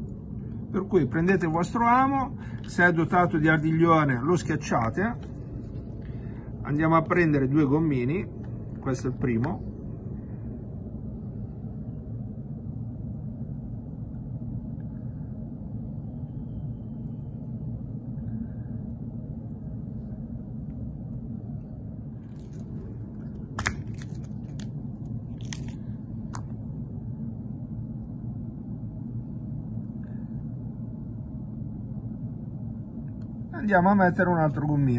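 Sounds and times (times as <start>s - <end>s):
low background rumble: 0.0s - 34.9s.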